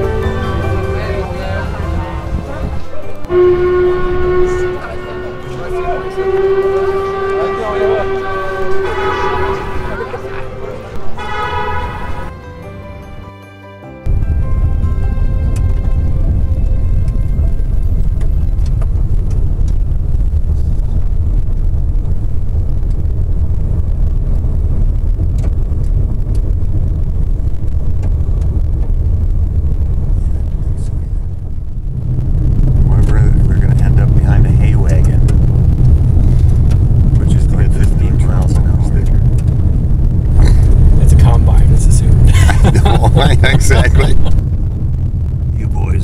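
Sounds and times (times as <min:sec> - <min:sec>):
tyres on gravel road: 0:00.0 - 0:12.4, 0:14.1 - 0:46.0
road and engine rumble: 0:00.0 - 0:46.0.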